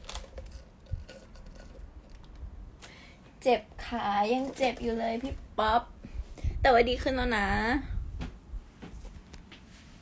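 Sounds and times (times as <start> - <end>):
plastic cup and straw handling: 0.0 - 2.5.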